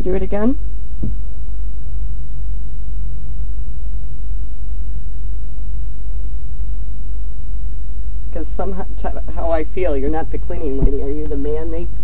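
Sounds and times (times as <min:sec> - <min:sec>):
loud low hum: 0:00.0 - 0:12.0.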